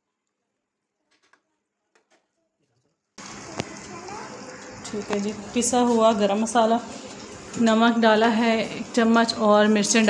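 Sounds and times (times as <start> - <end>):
steady cooking hiss: 3.2 - 10.0.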